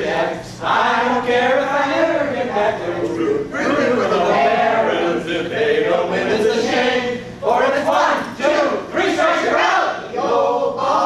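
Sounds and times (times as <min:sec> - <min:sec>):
group singing in unison: 0:00.0 - 0:11.0.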